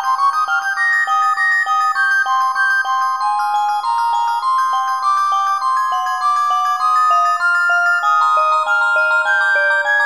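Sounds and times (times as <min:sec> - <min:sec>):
bell-like celesta notes: 0:00.0 - 0:10.0.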